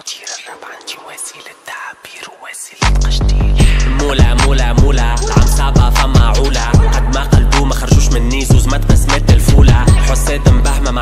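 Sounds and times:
whispered rap vocals: 0.0s - 11.0s.

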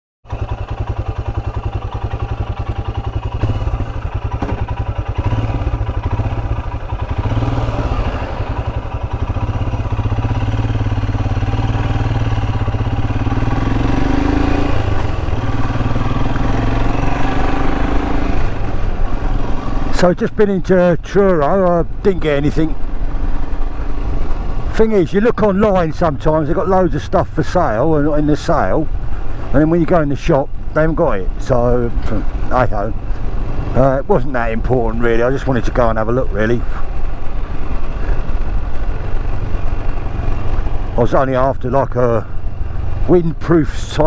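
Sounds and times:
motorcycle engine running: 0.3s - 44.0s.

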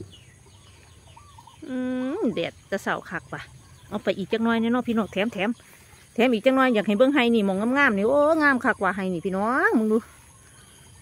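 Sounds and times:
woman speaking: 1.6s - 10.2s.

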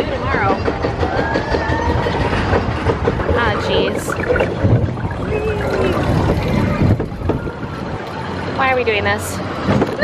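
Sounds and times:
low rumble: 2.9s - 8.4s.

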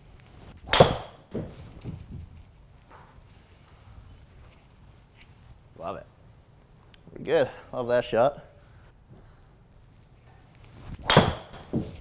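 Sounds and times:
golf club striking ball: 0.7s - 1.5s, 11.0s - 11.9s.

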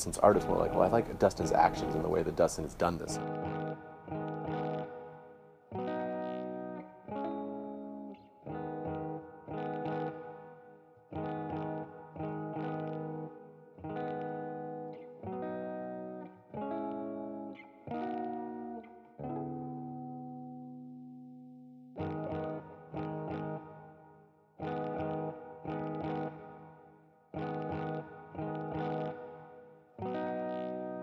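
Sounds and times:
electric guitar strumming chords: 0.0s - 31.0s.

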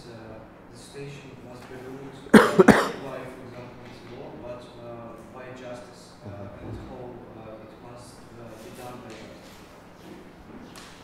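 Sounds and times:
man coughing: 2.3s - 3.1s.

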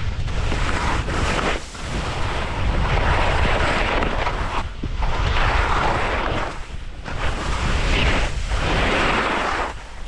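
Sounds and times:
skis scraping over snow: 0.0s - 10.0s
wind rushing over microphone: 0.0s - 10.0s.

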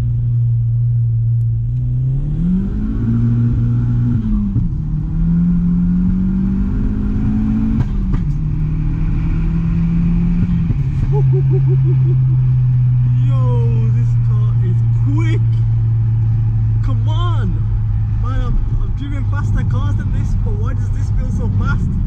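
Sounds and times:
car engine accelerating: 0.0s - 22.0s.

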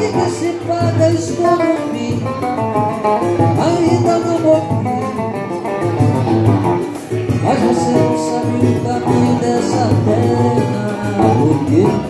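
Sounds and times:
person singing: 0.0s - 5.9s, 7.2s - 12.0s
plucked guitar: 0.0s - 12.0s.

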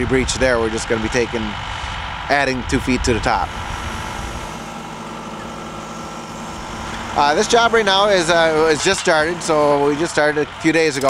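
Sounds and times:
faint constant hum: 0.0s - 11.0s
tractor engine idling: 0.0s - 11.0s.

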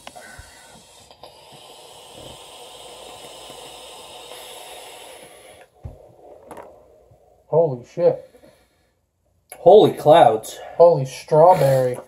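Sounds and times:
air hissing through vape atomizer: 0.0s - 7.2s.

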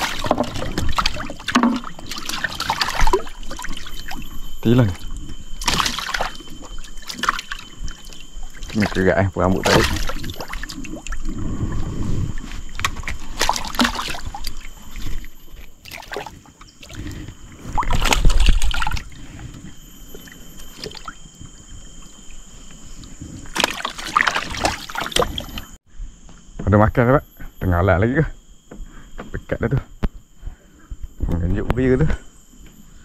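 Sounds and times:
water sloshing in a boat: 0.0s - 25.8s.

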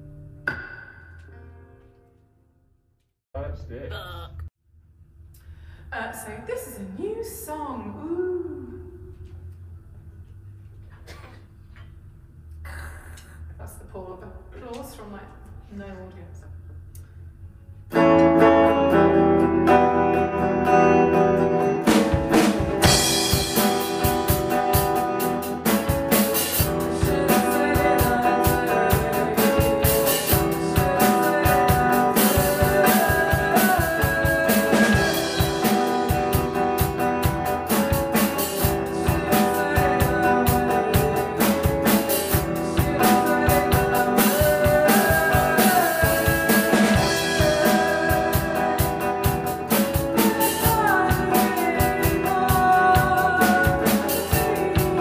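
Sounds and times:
drum kit playing: 0.0s - 1.8s, 17.9s - 55.0s
electric guitar playing: 0.0s - 2.6s, 17.9s - 55.0s.

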